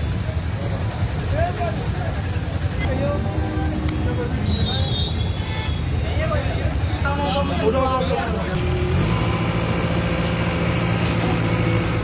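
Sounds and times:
road traffic rumble: 0.0 - 12.0
indistinct voices: 2.8 - 8.6.

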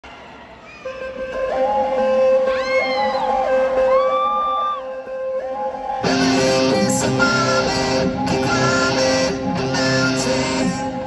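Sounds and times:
vocal whoops: 2.4 - 5.0
live rock band: 6.0 - 11.0.

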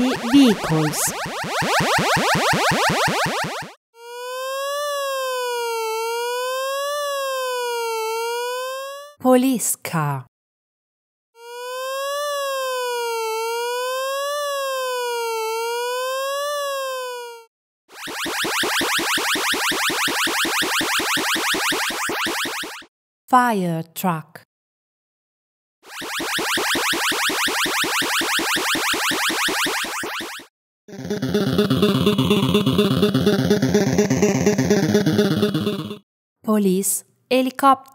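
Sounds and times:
synthesized wailing siren: 0.0 - 9.2, 11.4 - 22.9, 25.8 - 36.0
falling electronic sweeps: 25.9 - 36.0.

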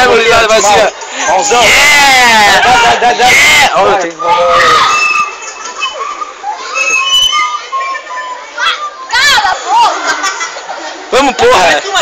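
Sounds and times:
young voices chattering: 0.0 - 12.0.

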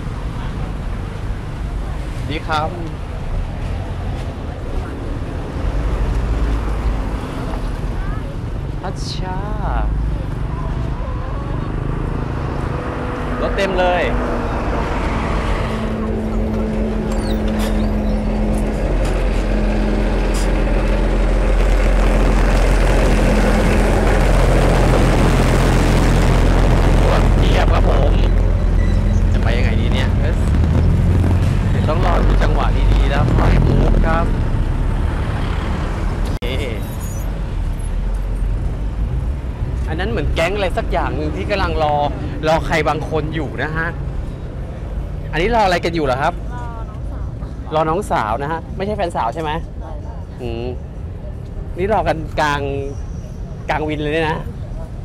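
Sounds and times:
bus engines rumbling: 0.0 - 55.0
street traffic: 0.0 - 55.0.

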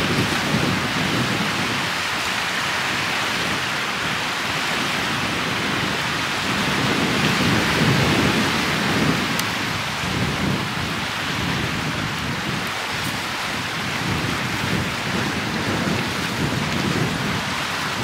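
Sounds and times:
lake waves washing onto rocks: 0.0 - 18.0
wind buffeting microphone: 0.0 - 18.0.

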